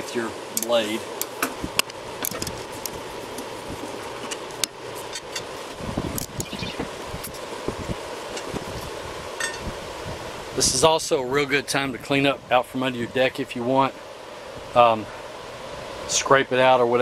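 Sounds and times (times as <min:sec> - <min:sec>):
steady background hum: 0:00.0 - 0:17.0
metal clinking: 0:09.4 - 0:09.6.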